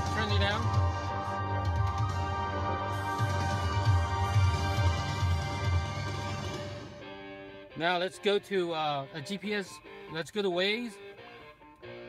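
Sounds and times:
music with pulsing bass beat: 0.0 - 7.6.

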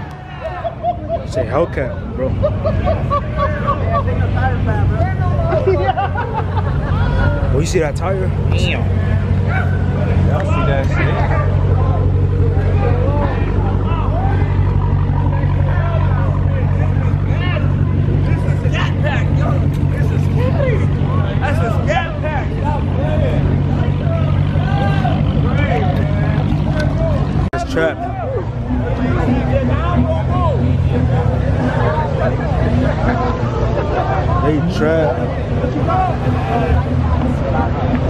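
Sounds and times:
crowd shouting and chattering: 0.0 - 38.0
car engine at high revs: 1.4 - 38.0.

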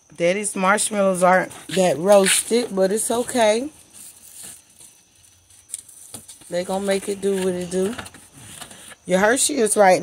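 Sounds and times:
soft rustling: 1.3 - 9.0.

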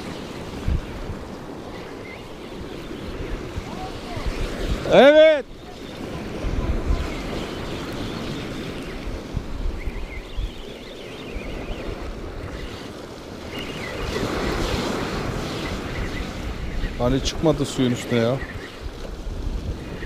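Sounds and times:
waves breaking on rocks: 0.0 - 10.8, 11.4 - 20.0
wind buffeting microphone: 0.0 - 20.0.

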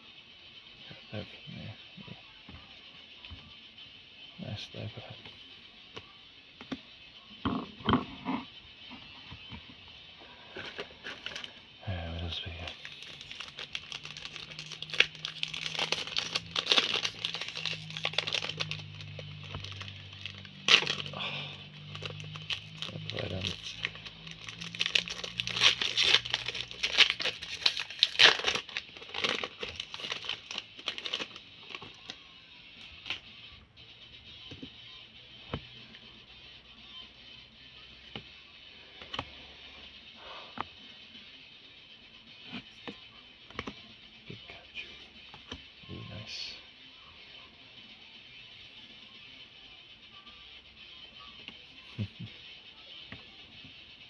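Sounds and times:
quiet background music: 0.0 - 54.0
plastic wrapper tearing and crinkling: 10.6 - 11.6, 12.5 - 32.2.

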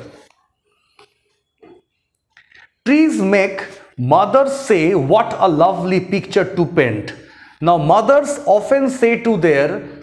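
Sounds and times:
man speaking: 2.8 - 10.0.

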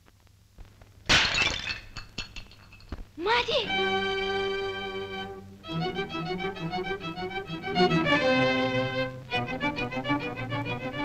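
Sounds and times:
brittle vessel smashing: 1.1 - 3.0
fragments clinking: 1.1 - 3.1.

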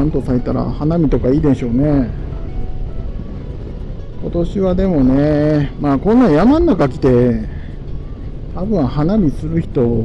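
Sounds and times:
motorcycle engine rumble: 0.0 - 10.0
wind noise: 0.0 - 10.0.

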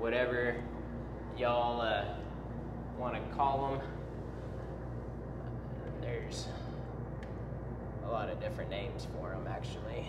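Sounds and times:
cooler fan humming: 0.0 - 10.0.

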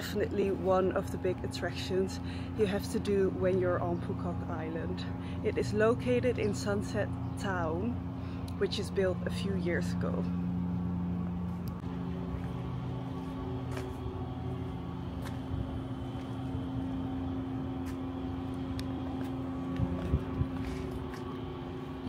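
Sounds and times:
motor hum: 0.0 - 22.0.

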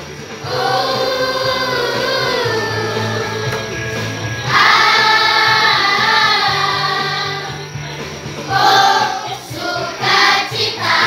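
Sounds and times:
instrumental accompaniment: 0.0 - 11.0
children's choir singing: 0.4 - 7.8, 8.4 - 11.0.

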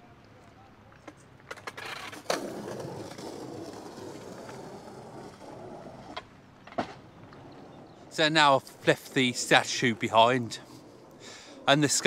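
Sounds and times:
skateboard clacks: 0.4 - 7.8
skateboard wheels rolling on stone: 0.4 - 12.0.

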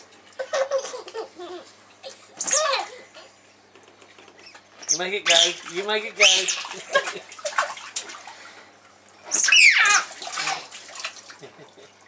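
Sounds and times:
water sloshing and splashing: 5.3 - 12.0.

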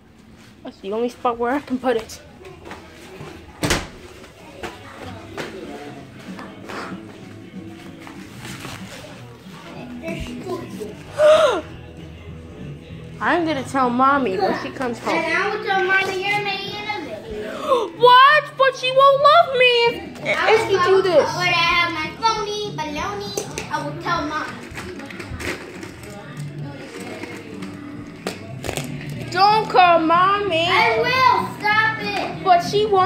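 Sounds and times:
background music: 0.0 - 33.0
child's gasp-like cry: 11.1 - 11.7.

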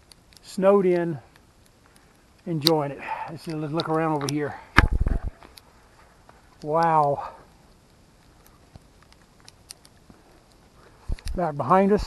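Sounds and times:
faint sharp ticks: 7.7 - 11.4.

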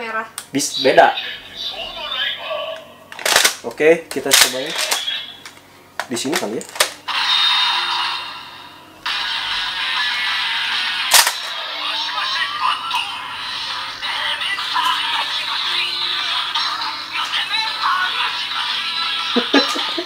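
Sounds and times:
toy belt electronic music: 4.3 - 5.6, 6.3 - 20.0.

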